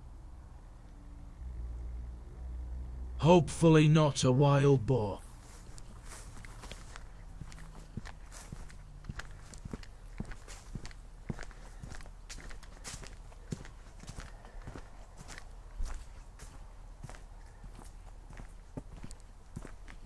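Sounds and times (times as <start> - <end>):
footsteps on dirt path: 5.0 - 20.0.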